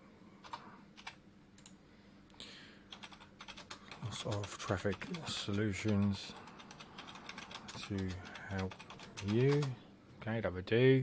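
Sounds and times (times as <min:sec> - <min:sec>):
computer keyboard typing: 0:00.4 - 0:01.7, 0:02.9 - 0:09.8.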